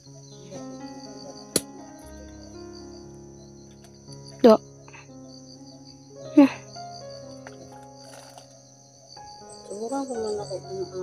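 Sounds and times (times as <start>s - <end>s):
background music: 0.0s - 11.0s
high insect buzz: 0.0s - 11.0s.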